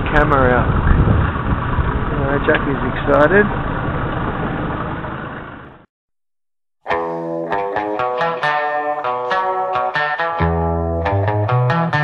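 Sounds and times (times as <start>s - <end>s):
guitar music: 6.8s - 12.0s.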